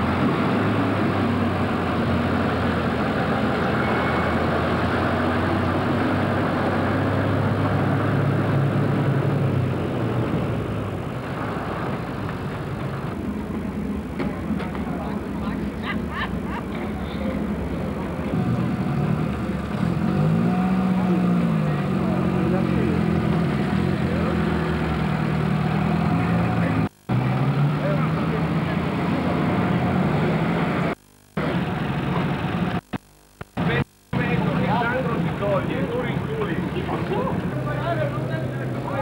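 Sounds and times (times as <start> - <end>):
vehicle engine running: 0.0 - 39.0
people talking: 13.5 - 19.6, 20.5 - 26.9, 27.7 - 32.8, 33.6 - 39.0.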